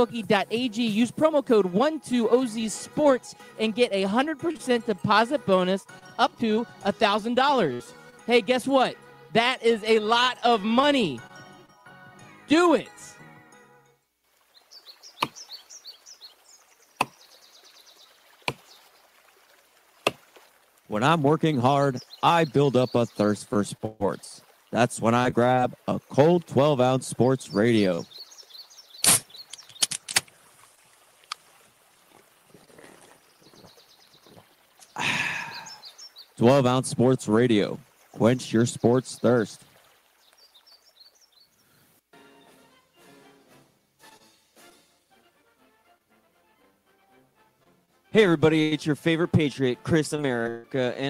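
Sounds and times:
birds chirping: 0.0 - 11.6, 14.5 - 19.1, 20.9 - 30.0, 32.5 - 42.8
axe chopping wood: 15.2 - 15.4, 17.0 - 17.2, 18.4 - 18.7, 20.0 - 20.4.

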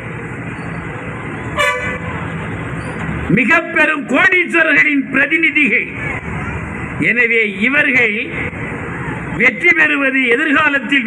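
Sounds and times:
street traffic: 0.0 - 11.0
vehicle horn toot: 1.6 - 2.2.

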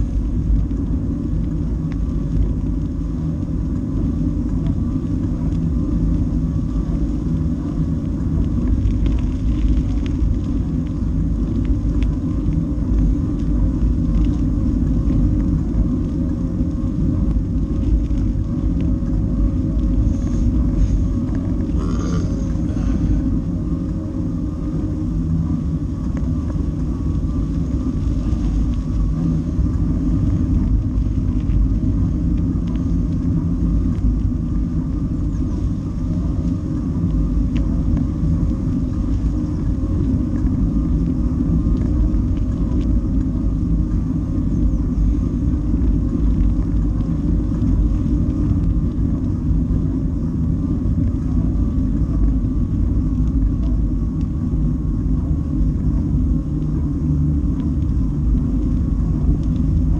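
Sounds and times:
wind rumble on microphone: 0.0 - 59.9.

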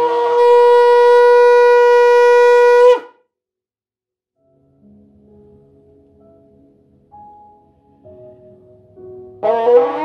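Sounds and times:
shofar blast: 0.0 - 3.2, 9.4 - 10.0.

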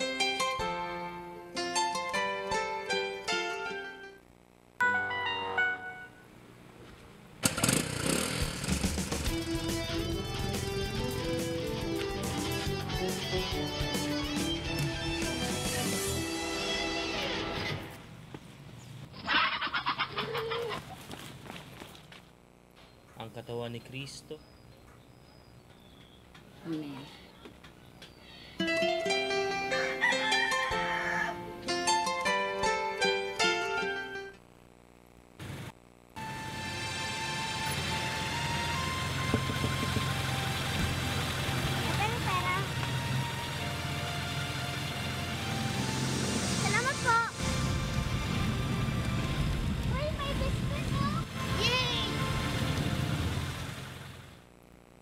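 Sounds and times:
street ambience: 5.6 - 28.6, 36.2 - 54.4
chicken calling: 19.1 - 21.0, 29.7 - 31.6
music of sustained notes: 28.6 - 29.9, 36.2 - 49.9, 51.3 - 53.9
car engine idling: 37.8 - 46.0
child speaking: 41.9 - 42.7, 46.6 - 47.4, 49.9 - 52.2.

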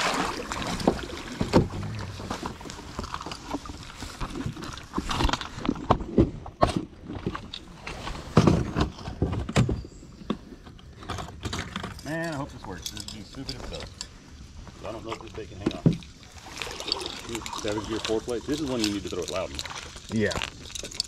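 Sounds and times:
fishing tackle clicking and rustling: 2.3 - 5.9, 10.2 - 14.2, 15.0 - 21.0.

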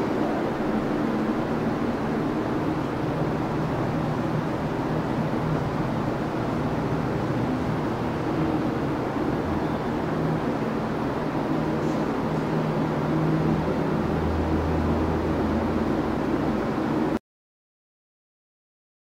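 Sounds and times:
even rushing noise: 0.0 - 17.2
low mechanical hum: 0.0 - 17.2.

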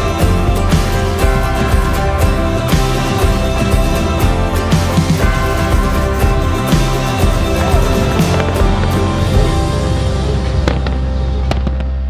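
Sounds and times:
background music with held tones: 0.0 - 12.0
fireworks cracking: 0.0 - 12.0.

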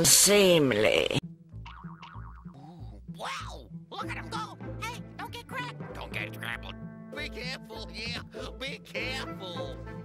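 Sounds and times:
comic background music: 0.7 - 10.0.

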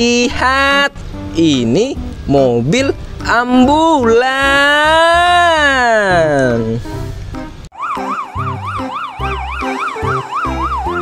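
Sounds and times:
background music with steady beat: 4.9 - 11.0
ambulance siren yelping: 7.7 - 11.0.

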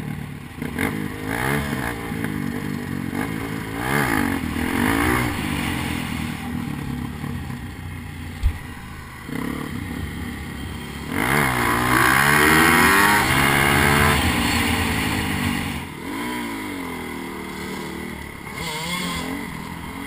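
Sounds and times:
dirt bike engine revving: 0.0 - 20.0.

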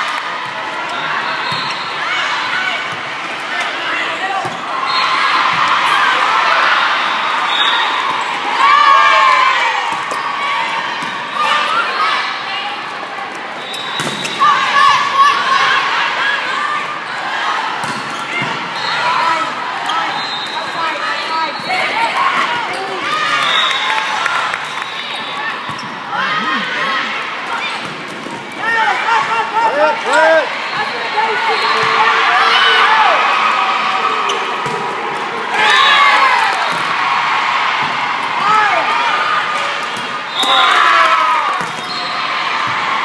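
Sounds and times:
spectators' voices: 0.0 - 43.0.

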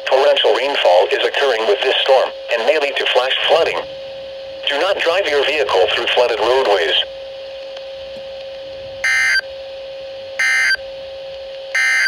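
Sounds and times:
harsh modem-like data bursts: 0.1 - 3.9, 4.6 - 7.1, 9.0 - 9.4, 10.4 - 10.8, 11.8 - 12.0.

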